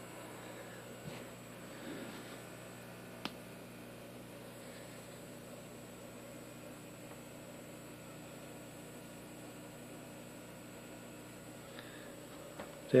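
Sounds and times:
aquarium equipment hum and hiss: 0.0s - 13.0s.

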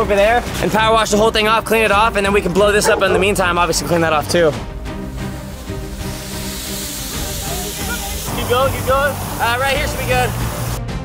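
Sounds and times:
music with sustained notes: 0.0s - 11.0s
steady hiss: 4.7s - 10.8s.

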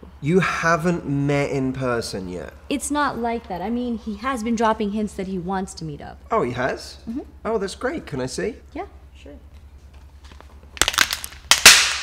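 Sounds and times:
sharp cracks and snaps: 10.2s - 12.0s
loud crack with hiss: 10.8s - 12.0s.

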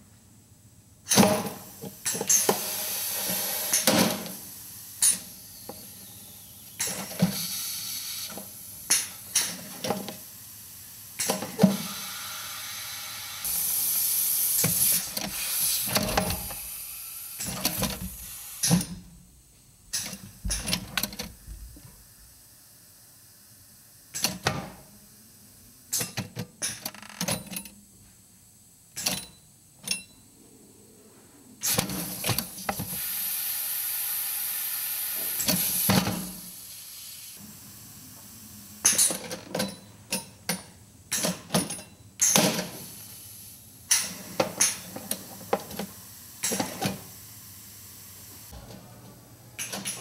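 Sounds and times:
compressed air hiss: 1.1s - 19.0s, 31.6s - 39.1s, 42.2s - 48.6s.

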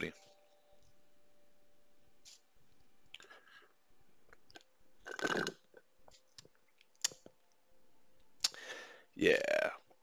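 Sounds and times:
person sipping through a straw: 5.0s - 5.6s.

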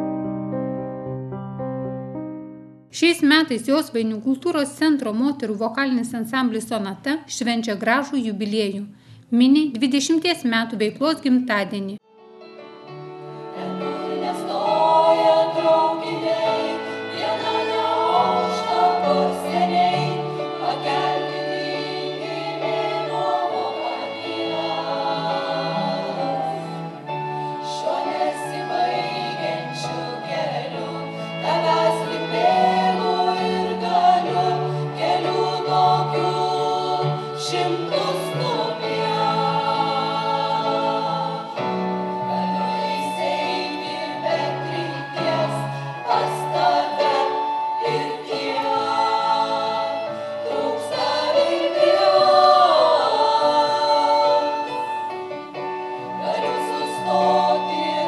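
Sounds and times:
women's ensemble singing in harmony: 12.7s - 58.0s.

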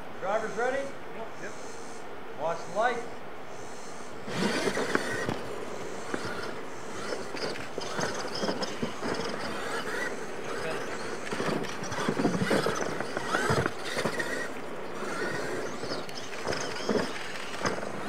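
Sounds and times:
toy truck motors whining: 3.6s - 18.0s
faint voices: 4.2s - 18.0s
tyres scrabbling on dirt: 4.3s - 18.0s.

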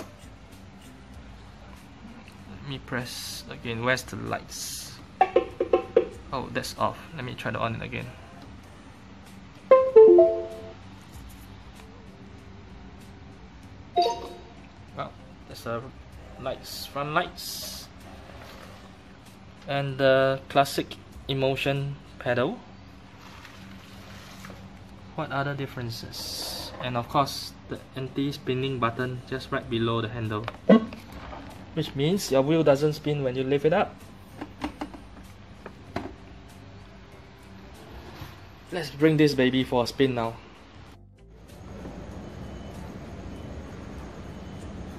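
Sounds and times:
brief electronic tone: 9.7s - 10.8s, 14.0s - 14.6s, 42.2s - 44.9s
electric unicycle power-on chime: 9.7s - 10.8s, 14.0s - 14.6s.

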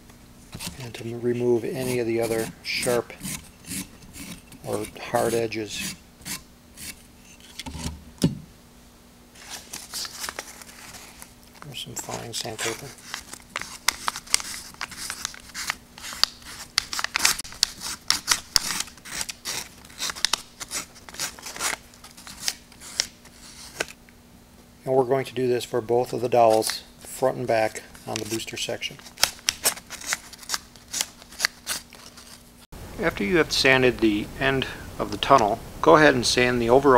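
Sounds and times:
sandpaper rubbing on wood: 1.7s - 7.0s.

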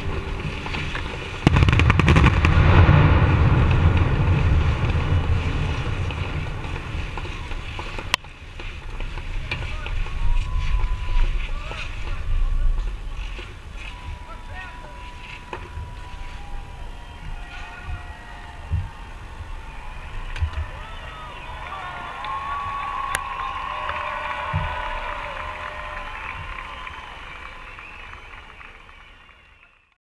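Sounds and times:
distant fireworks bangs: 0.0s - 28.4s
crowd cheering: 0.0s - 30.0s
whistling: 13.7s - 30.0s.

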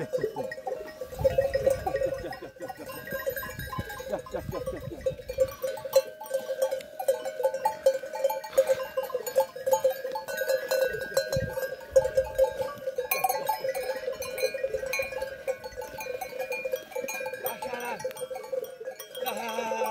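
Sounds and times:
sheep bells clanking: 0.0s - 19.9s.

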